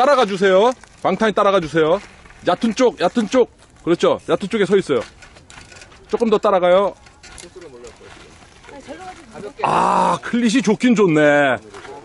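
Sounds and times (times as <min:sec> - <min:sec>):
quiet outdoor ambience: 0:00.0 - 0:12.0.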